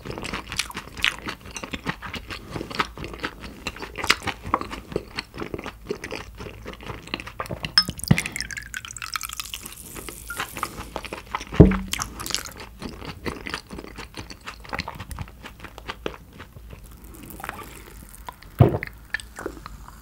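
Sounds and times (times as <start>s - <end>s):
close-miked chewing: 0.0s - 20.0s.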